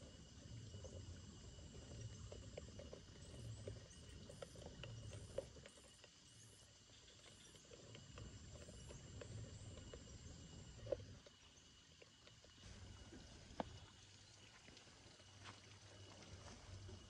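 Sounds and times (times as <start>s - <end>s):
insects calling: 0.0s - 17.0s
soft low rumble: 0.0s - 17.0s.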